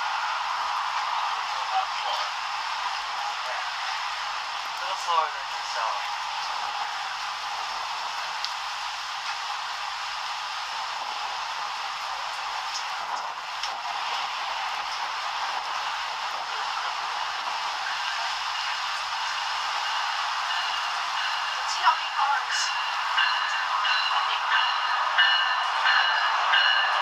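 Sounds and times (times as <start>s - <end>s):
steady outdoor hiss: 0.0s - 27.0s.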